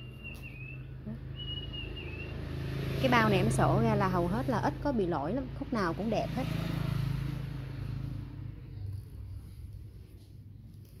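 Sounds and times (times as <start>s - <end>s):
faint high whistling tone: 0.0s - 2.4s.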